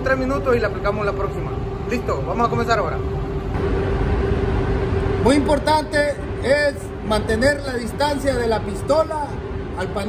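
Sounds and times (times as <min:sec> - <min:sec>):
ventilation rumble and hum: 0:00.0 - 0:10.0.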